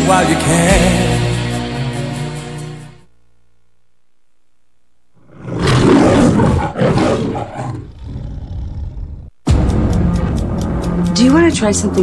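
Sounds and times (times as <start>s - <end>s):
lion roaring: 5.2s - 9.3s.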